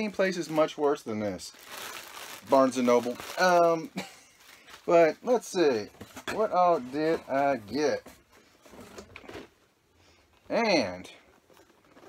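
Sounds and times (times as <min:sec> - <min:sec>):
packaging rustling and scraping: 0:00.0 - 0:09.6, 0:11.3 - 0:12.0.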